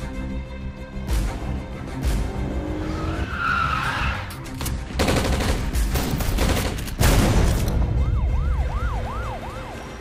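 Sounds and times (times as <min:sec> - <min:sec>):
car tyres squealing: 0:02.9 - 0:04.4.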